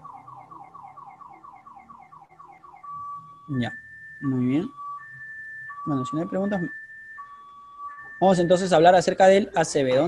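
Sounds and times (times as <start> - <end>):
faint car alarm siren: 0.0 - 10.0.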